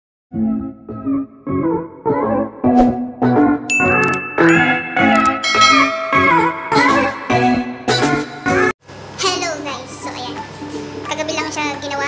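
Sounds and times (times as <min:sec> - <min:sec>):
bright bell ding: 0:03.7 - 0:06.8.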